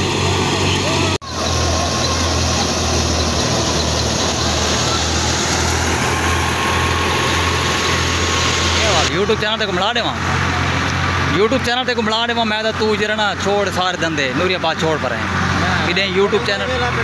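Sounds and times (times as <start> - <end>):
thresher pulsing drone: 0.0 - 16.9.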